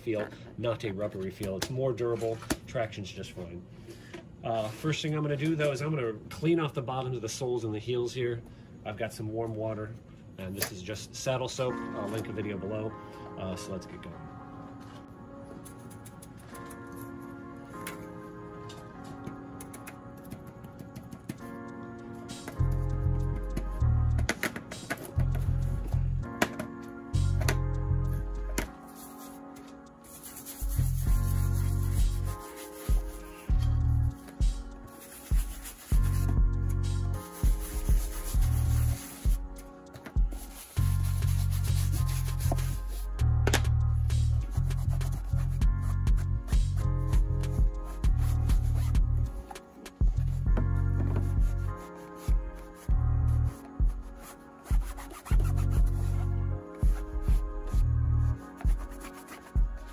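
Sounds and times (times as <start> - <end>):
brush scrubbing shoe leather: 30.0 - 33.5, 34.9 - 36.5, 37.2 - 39.4, 40.2 - 43.0, 44.6 - 46.8, 47.5 - 49.3, 51.2 - 57.8, 58.6 - 59.9.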